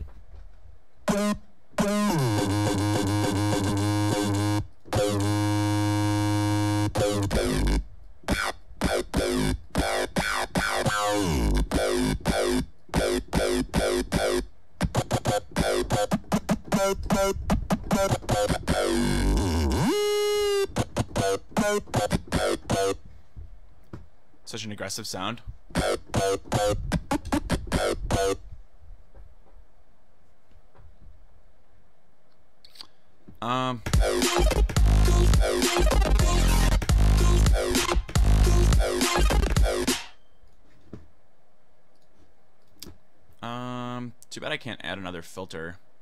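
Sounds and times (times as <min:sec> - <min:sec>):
buzzy synthesizer patch: 0:01.0 - 0:23.0, 0:25.7 - 0:28.4, 0:33.8 - 0:40.2.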